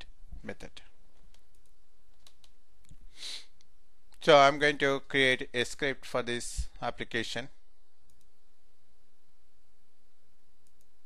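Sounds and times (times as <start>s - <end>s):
steady low hiss: 0.0s - 11.0s
computer clicks: 1.2s - 3.0s, 8.0s - 8.4s, 10.6s - 11.0s.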